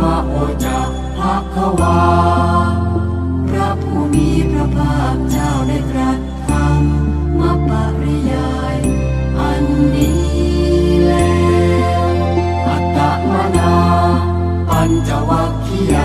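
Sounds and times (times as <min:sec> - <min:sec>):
chanting over musical backing: 0:00.0 - 0:16.0.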